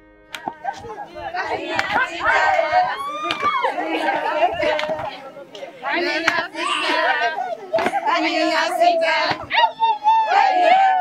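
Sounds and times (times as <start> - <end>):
women talking and calling out: 0.4 - 11.0.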